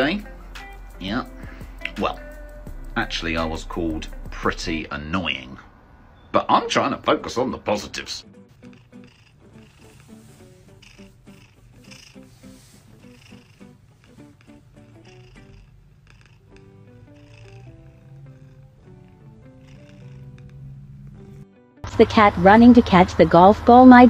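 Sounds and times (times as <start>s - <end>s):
soft background music: 0.0s - 5.6s, 6.3s - 24.0s
cat purring: 0.0s - 5.7s, 6.6s - 24.0s.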